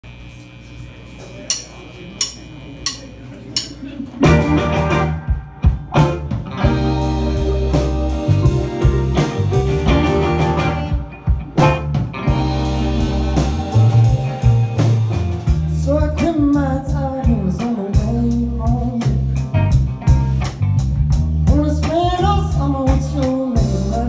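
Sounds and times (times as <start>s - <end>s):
drum count-in clicks: 1.5s - 3.0s, 3.6s - 3.8s
rock band playing live: 3.6s - 24.0s.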